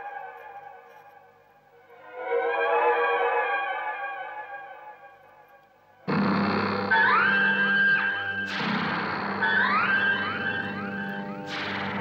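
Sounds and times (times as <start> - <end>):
loud musical sting: 6.1 - 12.0
dramatic background music: 6.3 - 12.0.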